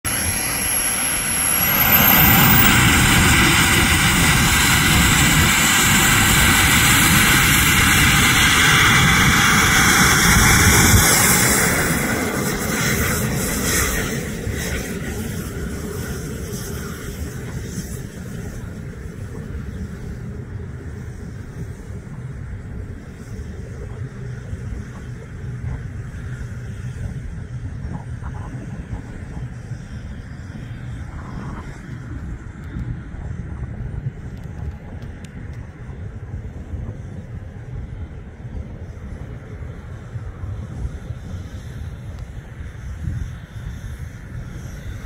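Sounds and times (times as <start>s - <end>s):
model jet engine whine: 0.0s - 45.0s
wind buffeting microphone: 0.1s - 45.0s.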